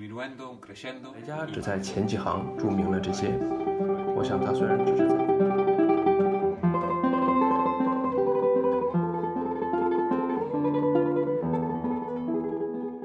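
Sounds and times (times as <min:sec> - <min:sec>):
solo guitar music: 0:00.6 - 0:13.0.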